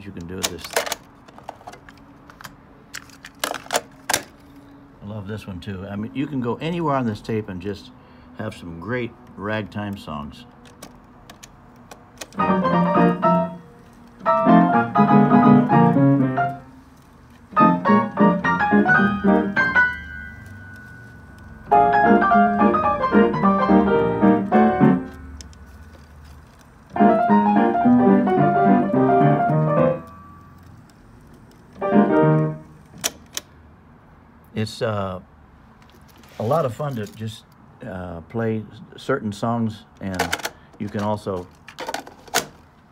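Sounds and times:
ragtime player piano: 0:12.4 - 0:13.6, 0:14.2 - 0:16.7, 0:17.5 - 0:25.4, 0:26.9 - 0:30.3, 0:31.8 - 0:32.6.

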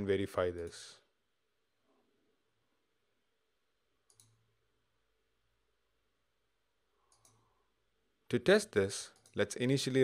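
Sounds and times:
faint computer mouse clicks: 0:04.1 - 0:04.4, 0:07.1 - 0:07.5.

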